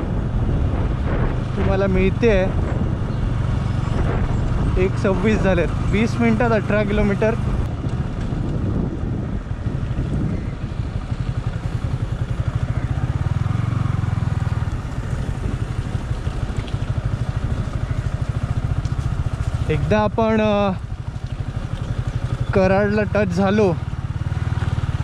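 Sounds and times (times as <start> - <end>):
motorcycle engine running: 0.0 - 25.0.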